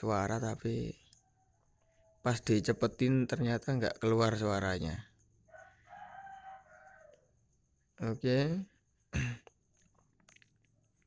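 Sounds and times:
distant rooster crowing: 1.1s - 2.4s, 5.4s - 7.5s.

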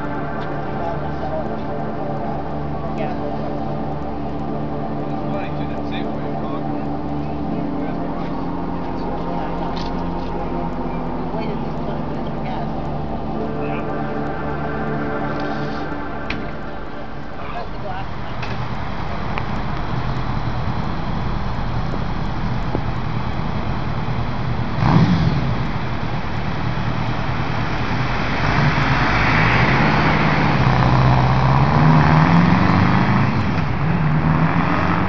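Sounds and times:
cars passing: 0.0s - 35.0s
vehicle engine passing close: 9.0s - 35.0s.

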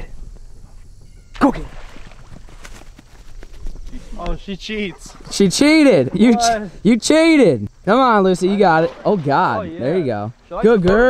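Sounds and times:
footsteps running on grass: 1.8s - 6.2s.

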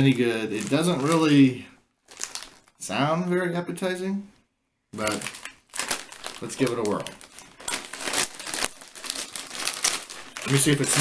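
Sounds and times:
chip bag crinkling: 0.0s - 2.8s, 5.0s - 11.0s.

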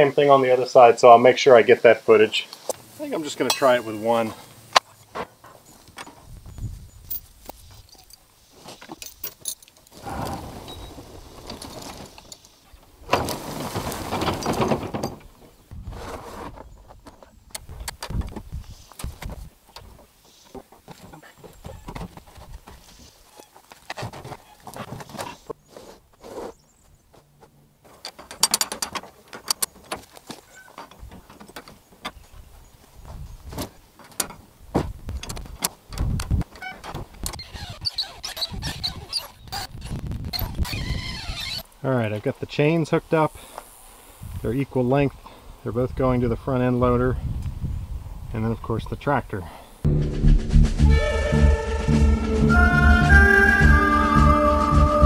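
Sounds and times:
metal rattling and scraping: 7.1s - 25.5s, 27.4s - 32.3s
metal jack clicking and clanking: 27.9s - 32.2s, 34.0s - 34.4s, 35.2s - 39.7s.

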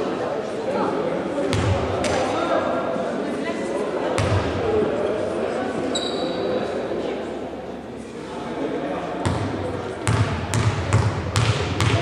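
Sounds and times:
voices echoing: 0.0s - 12.0s.

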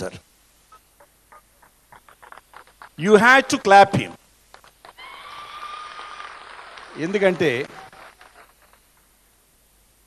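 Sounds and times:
audience handclaps: 2.0s - 3.2s, 4.5s - 9.1s.

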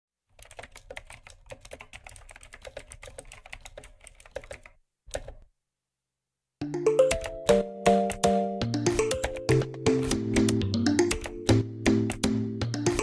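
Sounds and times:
computer keyboard typing: 0.3s - 5.5s, 6.9s - 13.0s.

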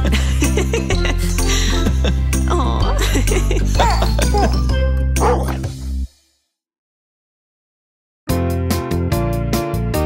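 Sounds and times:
cartoon puppy barking: 5.2s - 5.6s.

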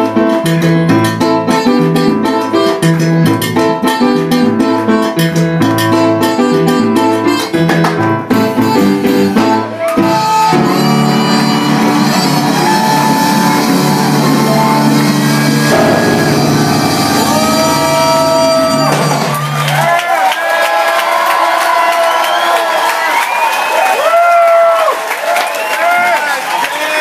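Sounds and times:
keyboard: 0.0s - 19.9s
upright bass line: 0.0s - 19.9s
saxophone holding long notes: 8.3s - 19.6s
crowd cheering and shouting: 9.6s - 27.0s.

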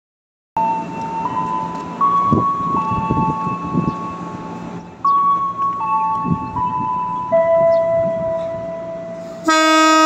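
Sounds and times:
train platform noise: 0.6s - 10.0s.

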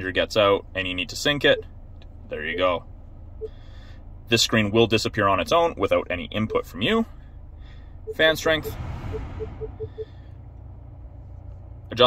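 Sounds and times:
short touchscreen beeps: 8.1s - 10.1s.

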